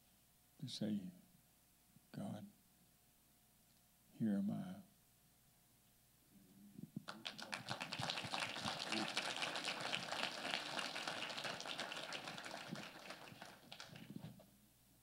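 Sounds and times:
congregation applauding: 0:07.1 - 0:14.4.

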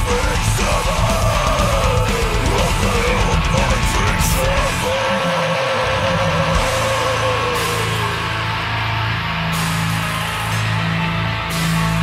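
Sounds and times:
death metal music: 0:00.0 - 0:12.0
distorted electric guitar sustained note: 0:00.0 - 0:12.0.

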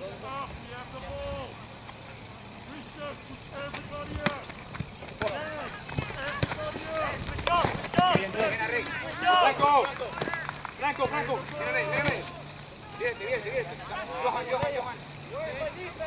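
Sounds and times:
players shouting calls: 0:00.0 - 0:16.0
ball being kicked: 0:03.7 - 0:10.4, 0:11.6 - 0:12.4, 0:14.5 - 0:15.0.

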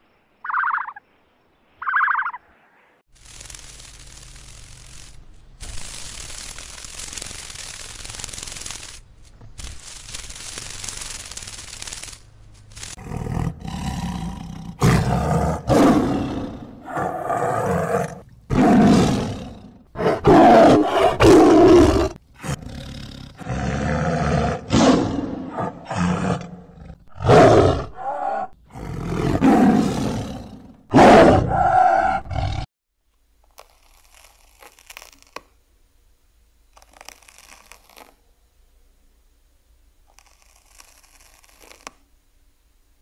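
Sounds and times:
tiger roaring and growling: 0:13.0 - 0:32.7.

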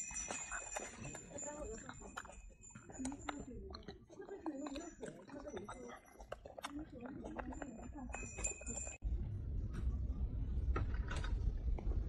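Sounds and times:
monkey chewing with wet smacks: 0:00.0 - 0:09.0.

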